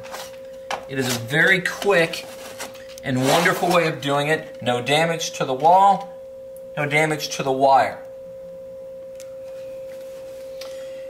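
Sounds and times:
steady pure tone: 0.0s - 11.0s.

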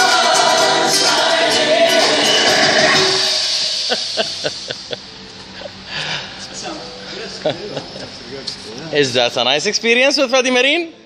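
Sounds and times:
choral music through speakers: 0.0s - 6.4s.

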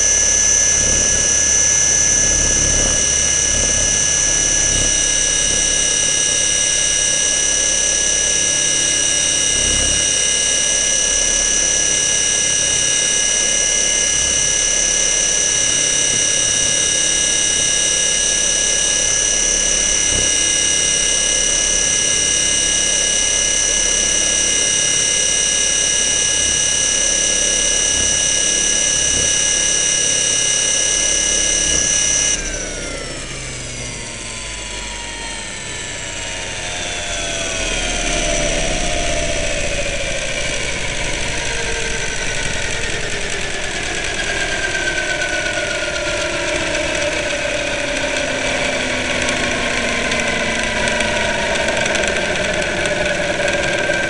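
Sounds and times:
model aircraft motor whine: 0.0s - 54.0s.

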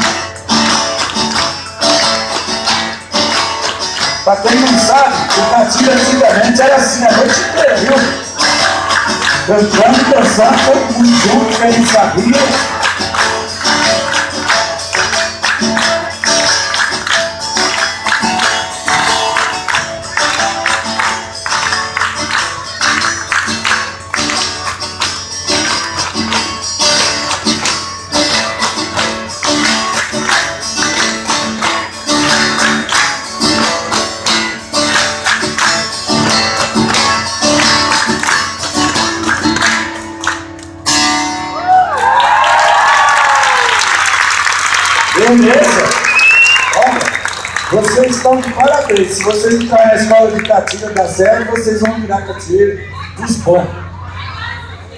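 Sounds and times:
hand claps: 0.0s - 6.2s, 7.1s - 41.0s, 41.9s - 52.1s
crowd applauding: 0.0s - 40.8s, 41.5s - 53.5s
strummed guitar: 0.0s - 41.9s, 45.0s - 54.2s.

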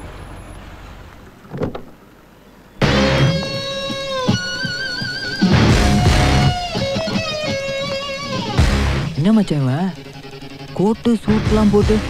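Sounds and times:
car rumble: 0.0s - 4.6s.

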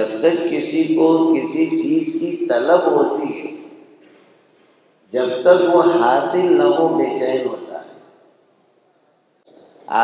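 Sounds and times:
man talking: 0.0s - 3.8s, 5.1s - 8.1s.

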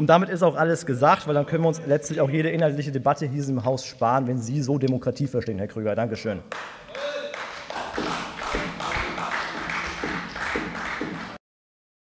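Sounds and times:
crowd applauding: 6.5s - 11.4s.

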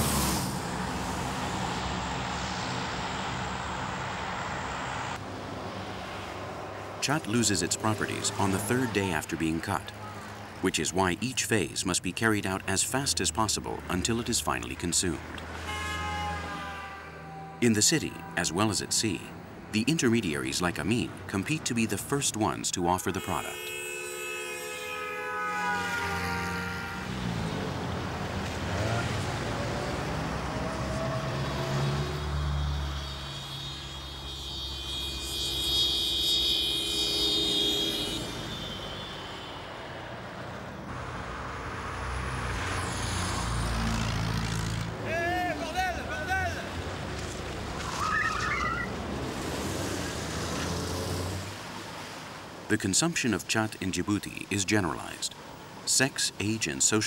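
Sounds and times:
cars passing: 0.0s - 57.0s
high drawn-out tone: 32.6s - 39.8s
short voice-like calls: 47.8s - 48.9s.

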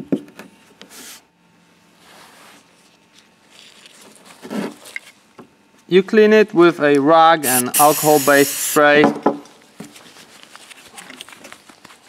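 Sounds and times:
soft rustling and rubbing: 1.9s - 5.0s, 9.8s - 12.0s
sharp knock on workbench: 9.0s - 9.4s.

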